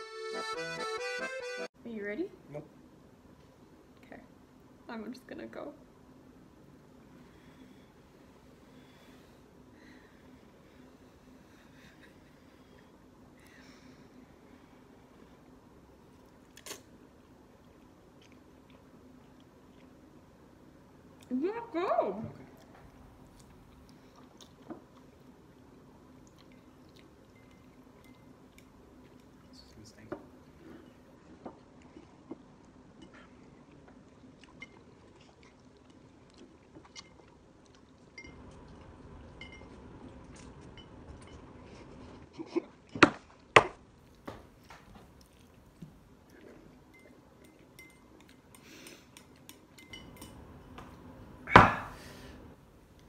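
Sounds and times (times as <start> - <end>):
faint steady hum: 0.0 - 53.0
quiet chewing: 10.3 - 21.4, 22.4 - 51.1
chopsticks clinking on ceramic bowls: 46.9 - 50.5.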